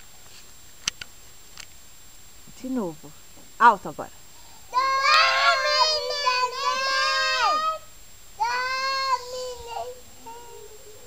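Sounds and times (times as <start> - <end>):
children singing held high notes: 4.7 - 11.0.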